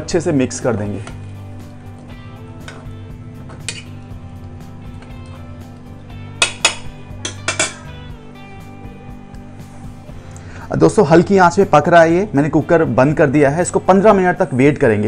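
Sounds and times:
background music: 0.0 - 15.0
metal spoon scraping a pot: 3.6 - 4.0.

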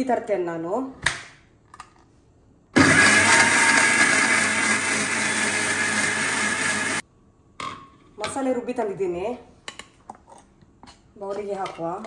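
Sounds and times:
mixer grinder grinding paste: 2.8 - 7.0.

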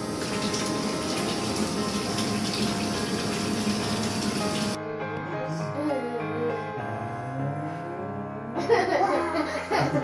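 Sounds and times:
tap running into bathtub: 0.0 - 4.8.

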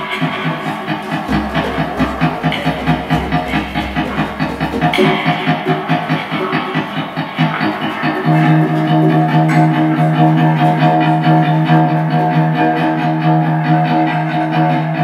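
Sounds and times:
electric guitar: 0.0 - 15.0
held tones: 0.1 - 7.1.

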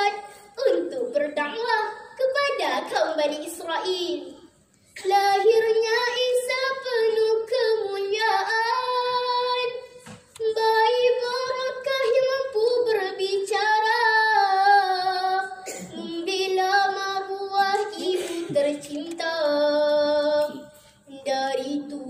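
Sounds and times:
girl singing into microphone: 0.0 - 22.0.

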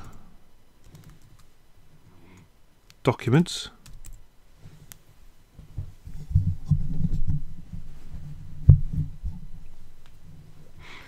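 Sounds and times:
computer keyboard keystrokes: 3.8 - 4.2.

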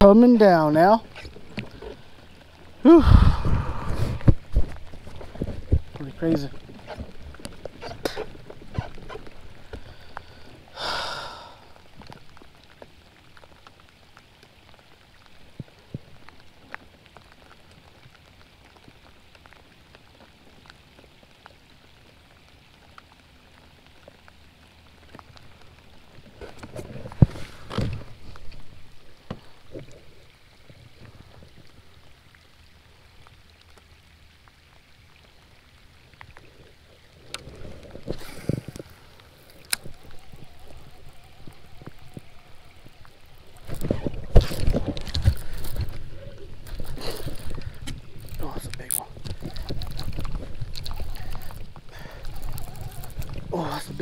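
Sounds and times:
light rain hissing: 0.0 - 54.0
raindrop ticks: 0.0 - 54.0
gear rustling and knocking: 43.6 - 53.5.

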